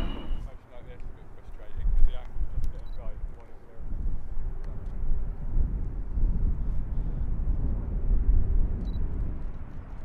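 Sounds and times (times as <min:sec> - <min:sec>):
piston aircraft engines rumbling: 0:00.0 - 0:02.4.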